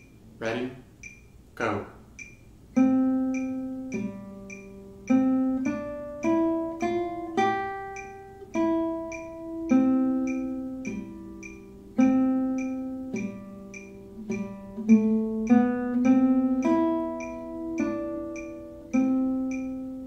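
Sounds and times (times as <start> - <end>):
metronome clicking: 0.0 - 20.0
classical guitar melody: 2.7 - 20.0.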